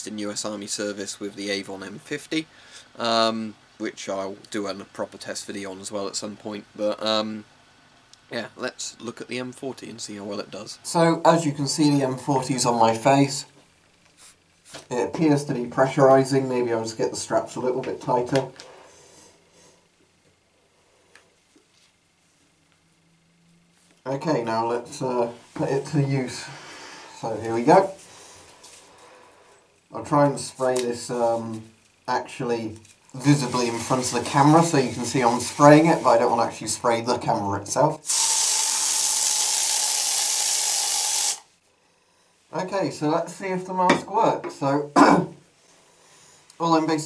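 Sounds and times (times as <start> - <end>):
aerosol can spraying: 38.0 - 41.5.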